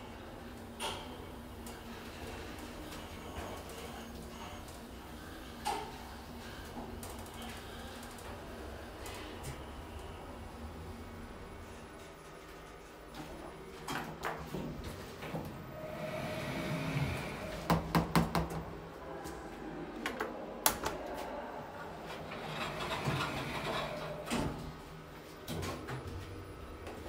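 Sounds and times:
elevator doors sliding: 14.6s - 17.9s, 21.8s - 25.0s.

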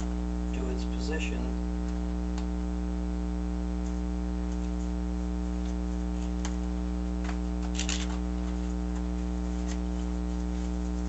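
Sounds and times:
steady electrical hum: 0.0s - 11.0s.

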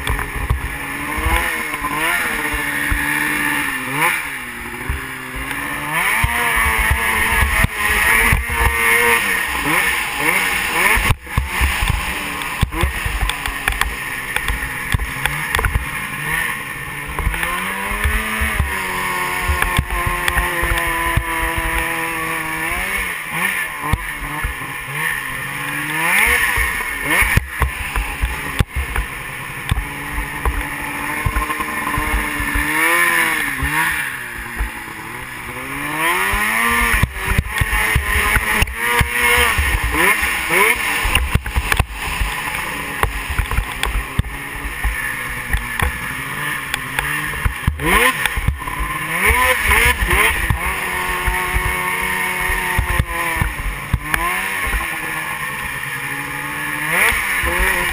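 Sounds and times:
snowmobile engine revving: 0.0s - 57.9s.

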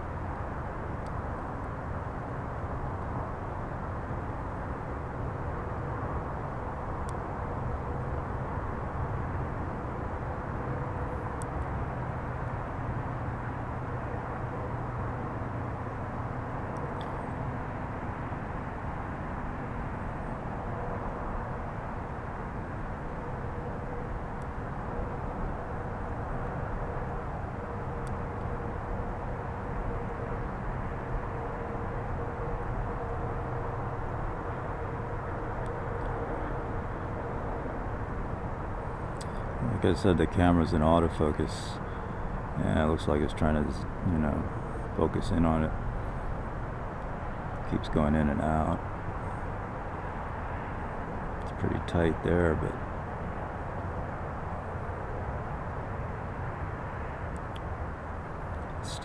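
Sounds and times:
faint hum: 0.0s - 59.0s
low outdoor rumble: 0.0s - 59.0s.

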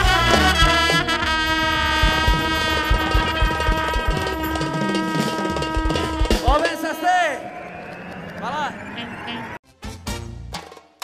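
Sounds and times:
brass instrument long note: 0.0s - 6.9s
even drum beat: 0.0s - 7.0s.

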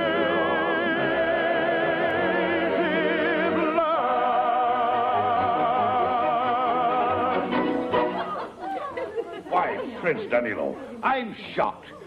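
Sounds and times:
women chattering: 8.2s - 12.0s.

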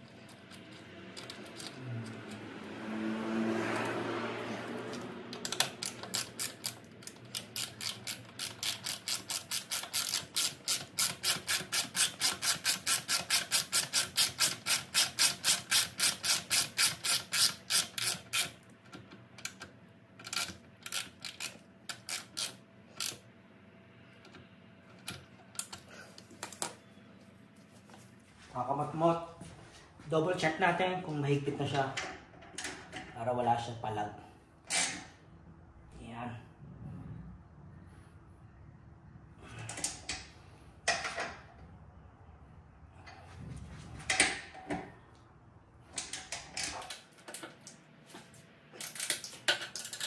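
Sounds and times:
ratchet wrench clicking: 5.4s - 18.6s, 20.2s - 23.2s.

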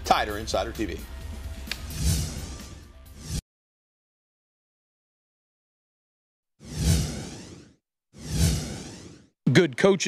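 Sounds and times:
whoosh sound effects: 1.8s - 3.4s, 6.6s - 9.3s.

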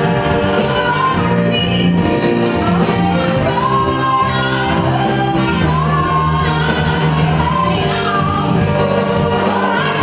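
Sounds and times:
backing vocalists singing: 0.0s - 10.0s
live band playing: 0.0s - 10.0s
woman singing: 0.2s - 10.0s.

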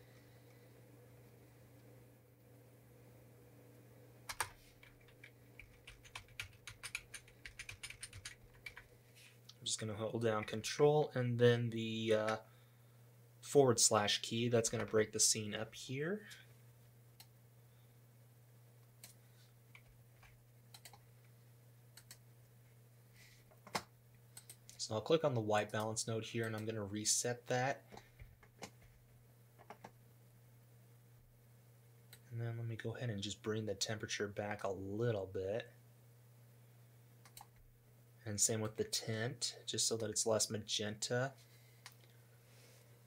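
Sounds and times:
low steady hum: 0.0s - 43.0s
keyboard keys clicking: 4.3s - 8.8s.

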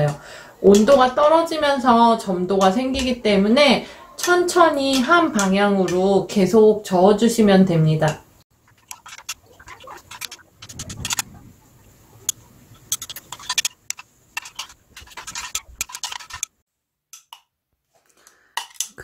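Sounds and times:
metal spoon scraping glass beaker: 8.8s - 11.4s, 12.2s - 16.5s.

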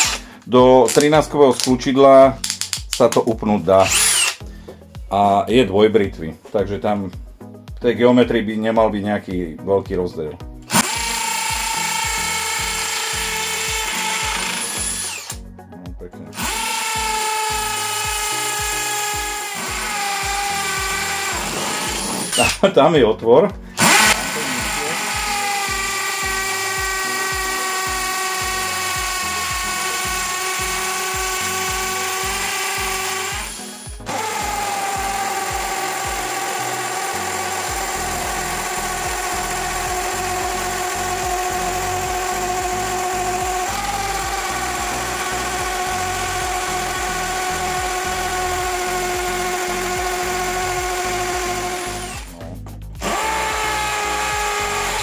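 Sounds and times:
drill boring into concrete: 0.0s - 1.7s, 3.8s - 4.6s, 10.6s - 15.5s, 16.3s - 22.7s, 23.7s - 52.4s, 53.0s - 55.0s.

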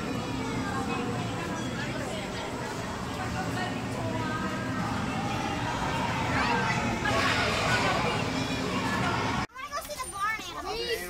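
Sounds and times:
children talking and calling: 0.0s - 11.0s
loud dense din: 4.0s - 9.4s.

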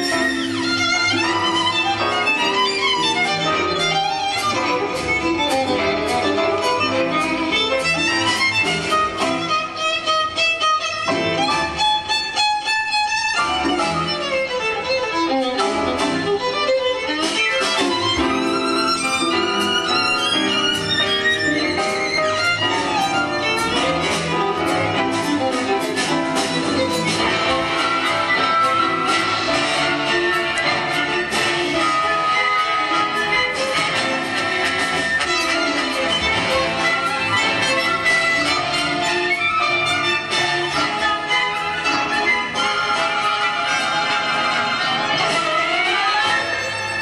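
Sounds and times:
jazz rhythm section: 0.0s - 47.0s
symphony orchestra: 0.0s - 47.0s
violin fast melodic runs: 0.0s - 47.0s.

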